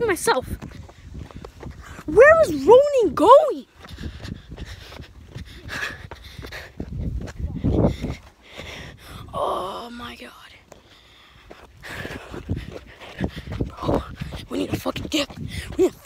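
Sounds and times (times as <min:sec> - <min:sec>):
footsteps crunching on dirt and rock: 0:00.4 - 0:08.8, 0:10.6 - 0:16.0.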